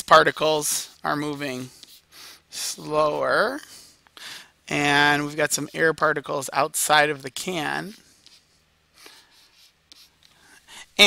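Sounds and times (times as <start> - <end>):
stylus scratching on a tablet: 0.1 - 3.6, 6.9 - 10.6.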